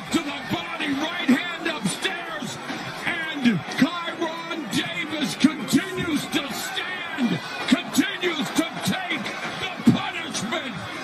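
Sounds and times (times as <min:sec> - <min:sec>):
crowd yelling and shouting: 0:00.0 - 0:11.0.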